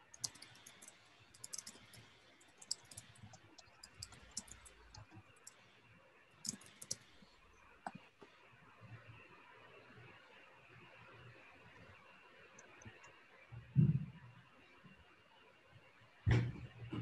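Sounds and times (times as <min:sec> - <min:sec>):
keyboard typing: 0:00.0 - 0:05.6, 0:06.4 - 0:07.2.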